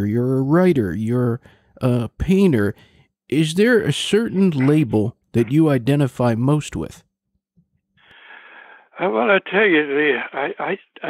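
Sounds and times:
man breathing in over telephone: 0:01.4 - 0:01.8, 0:02.8 - 0:03.1, 0:08.0 - 0:09.0.

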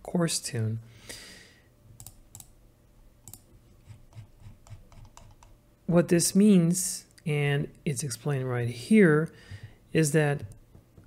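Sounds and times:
computer clicks and taps: 0:02.0 - 0:02.5, 0:03.2 - 0:05.6.

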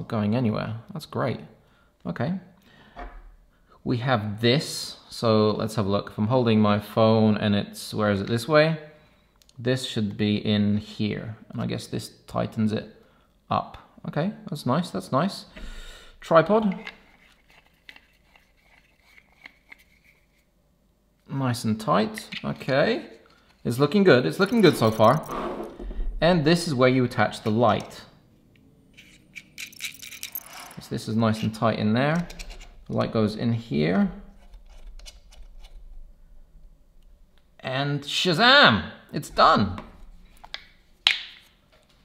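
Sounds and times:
hands handling plastic clamp: 0:16.6 - 0:20.4.

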